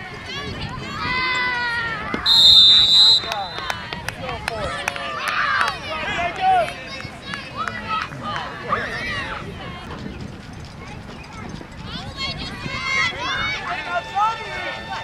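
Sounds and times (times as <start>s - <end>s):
spectators shouting and cheering: 0.0s - 9.8s
referee's whistle blast: 2.3s - 3.7s.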